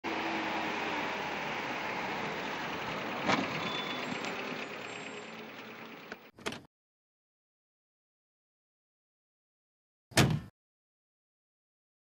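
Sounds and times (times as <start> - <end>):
street traffic noise: 0.0 - 6.3.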